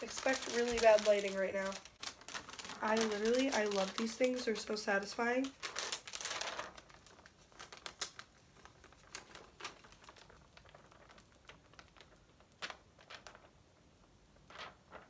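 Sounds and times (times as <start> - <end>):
plastic sheet crinkling: 0.0 - 15.0.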